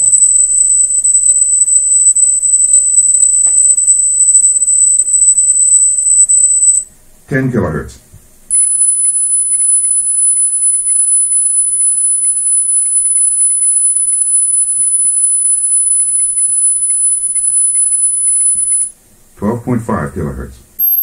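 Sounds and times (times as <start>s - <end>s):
high-pitched test tone: 0.0s - 6.9s, 8.5s - 18.9s, 20.8s - 21.0s.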